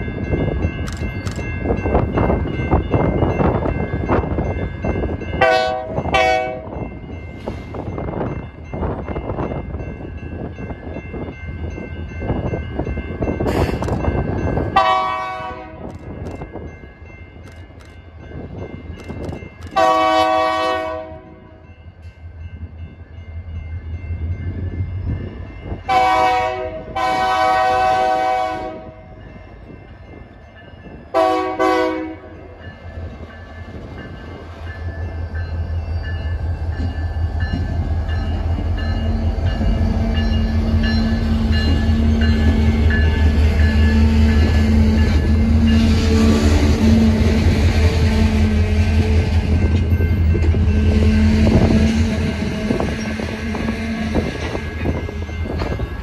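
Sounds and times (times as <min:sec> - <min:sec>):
train wheels rolling on rails: 0:00.0 - 0:56.0
locomotive horn blasts: 0:05.4 - 0:06.8, 0:14.8 - 0:15.9, 0:19.8 - 0:21.5, 0:25.9 - 0:29.0, 0:31.2 - 0:32.4, 0:50.6 - 0:54.4.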